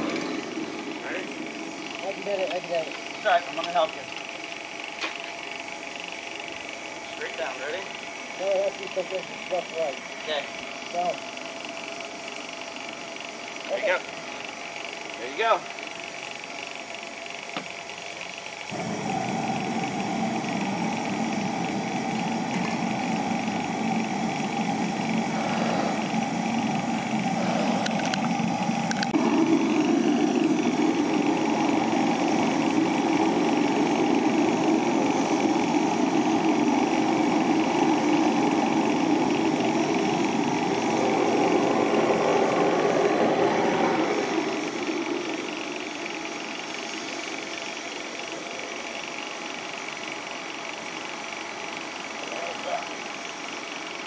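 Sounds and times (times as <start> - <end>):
furnace burner and blower rushing: 0.0 - 54.0.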